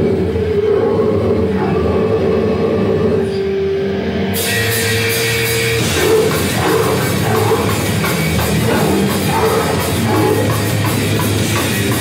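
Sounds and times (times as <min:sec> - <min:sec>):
heavy metal band playing live: 0:03.4 - 0:12.0.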